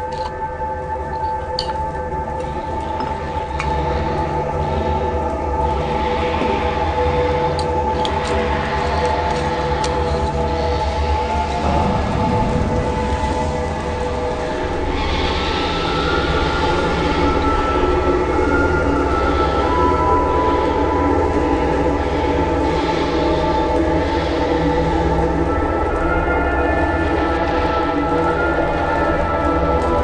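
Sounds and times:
constant low rumble: 0:00.0 - 0:30.0
sustained droning tones: 0:00.0 - 0:30.0.

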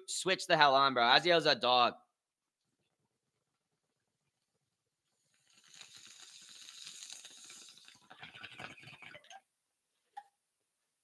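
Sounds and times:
water bubbling in glass bong: 0:05.2 - 0:09.4.

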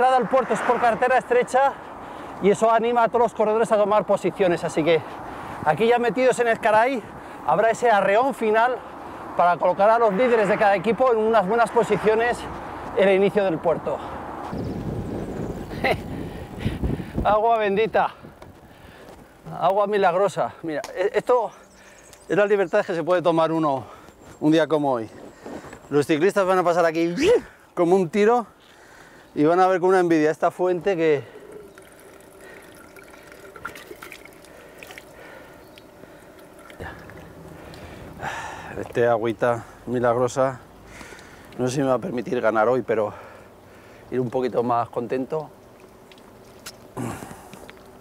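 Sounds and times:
wind noise on microphone: 0:14.2 - 0:19.0
water trickling from fountain: 0:30.4 - 0:39.0, 0:43.2 - 0:48.0
water splashing: 0:30.8 - 0:38.7.

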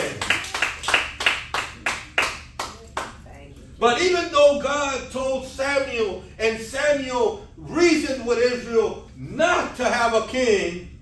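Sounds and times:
rhythmic hand clapping: 0:00.0 - 0:03.2.

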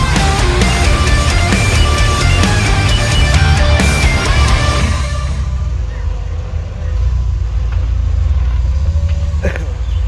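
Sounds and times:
engine running at low revs: 0:00.0 - 0:10.0.

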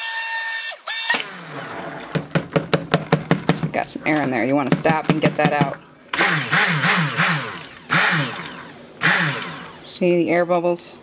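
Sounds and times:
stick blender motor whine: 0:05.2 - 0:10.2.

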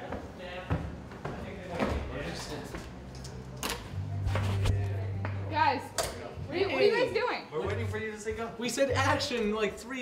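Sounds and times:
footsteps down stairs: 0:00.0 - 0:03.0.

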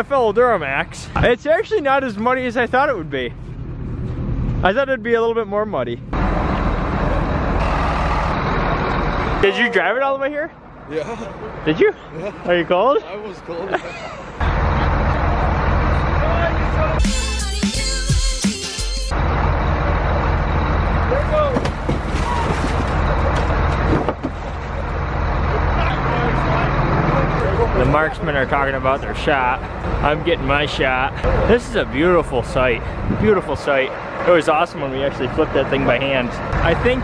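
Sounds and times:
tractor engine running: 0:06.0 - 0:09.6, 0:14.2 - 0:17.0, 0:19.1 - 0:37.0
car thudding: 0:21.3 - 0:24.5.

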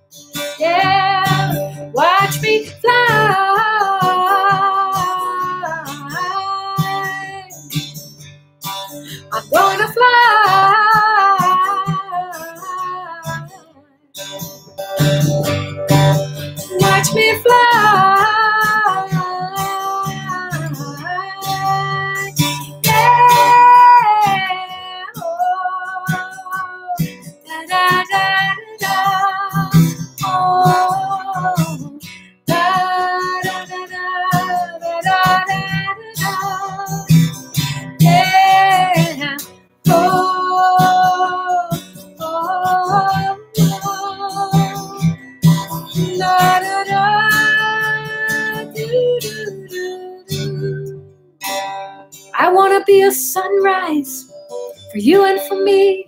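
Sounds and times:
acoustic guitar strumming: 0:00.0 - 0:56.0
woman singing long notes: 0:00.6 - 0:07.6, 0:09.2 - 0:13.6, 0:16.8 - 0:37.0, 0:38.0 - 0:45.0, 0:46.0 - 0:51.0, 0:52.4 - 0:54.2, 0:54.9 - 0:56.0.

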